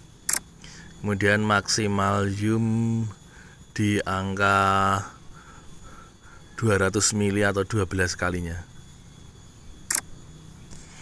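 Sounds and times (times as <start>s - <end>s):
camera shutter click: 9.9s - 10.1s.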